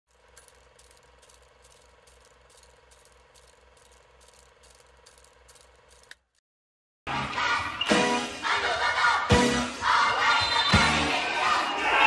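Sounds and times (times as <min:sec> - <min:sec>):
mechanical ticking: 0:00.1 - 0:06.3.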